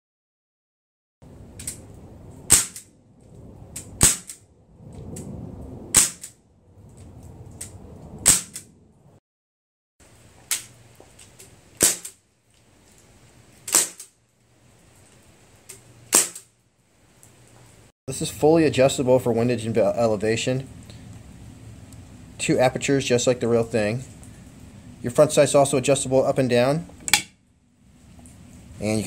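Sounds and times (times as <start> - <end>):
air rifle shots: 2.5 - 2.9, 4.0 - 4.4, 5.9 - 6.4, 8.2 - 8.7, 11.8 - 12.2, 13.7 - 14.1, 16.1 - 16.5.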